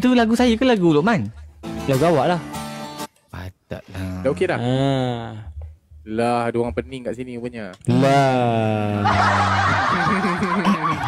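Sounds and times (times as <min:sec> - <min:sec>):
men chuckling: 0:07.9 - 0:11.0.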